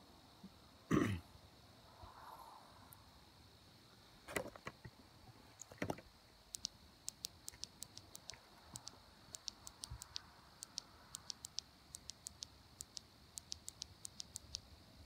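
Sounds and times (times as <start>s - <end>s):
insects chirping: 0.0s - 15.0s.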